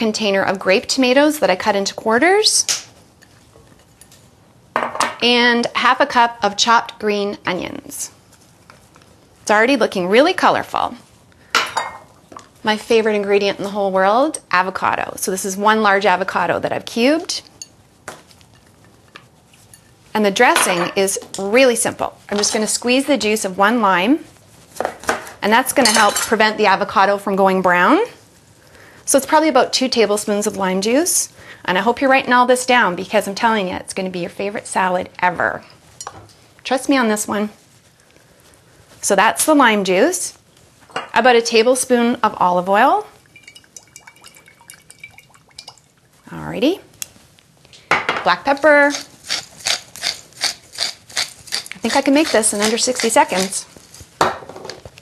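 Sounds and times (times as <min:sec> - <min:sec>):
oil dripping onto salad: 0:43.2 - 0:46.2.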